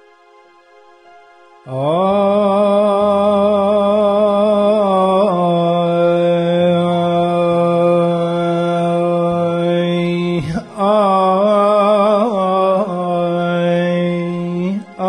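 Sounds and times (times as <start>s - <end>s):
man singing unaccompanied: 1.7s - 15.0s.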